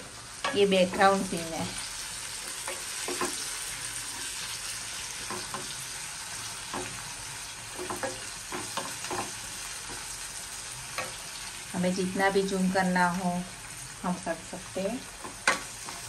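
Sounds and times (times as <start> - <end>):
onions sizzling in oil: 0.0 - 16.0
wooden spatula scraping a pan: 15.2 - 16.0.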